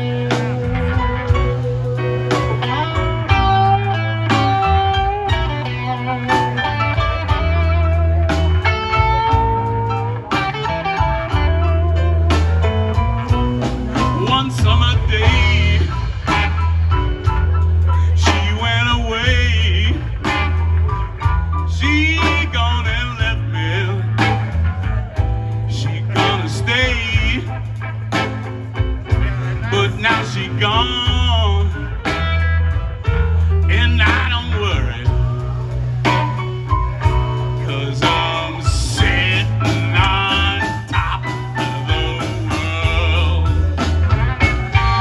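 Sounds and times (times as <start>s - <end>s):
person singing: 0.0s - 20.6s, 21.6s - 32.2s, 33.6s - 45.0s
bass guitar: 0.0s - 45.0s
drums: 0.0s - 45.0s
electric guitars: 0.0s - 45.0s.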